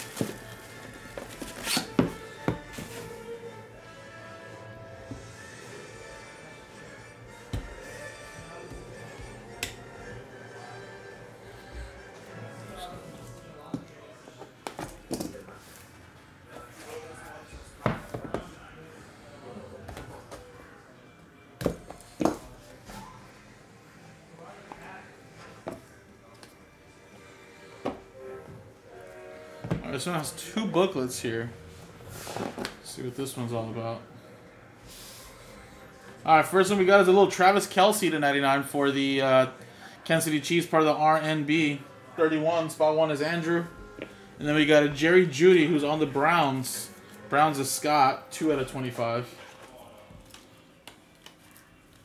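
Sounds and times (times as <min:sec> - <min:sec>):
quiet background music: 0:00.0 - 0:52.0.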